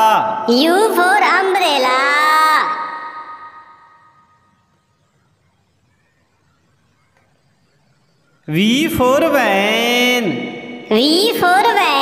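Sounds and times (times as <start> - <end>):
person speaking with echo: 0.0 - 3.8, 8.5 - 12.0.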